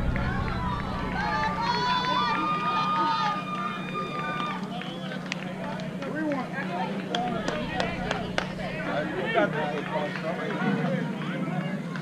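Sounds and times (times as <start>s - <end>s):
long drawn-out shout: 0.0s - 5.0s
steady low hum: 0.0s - 10.5s.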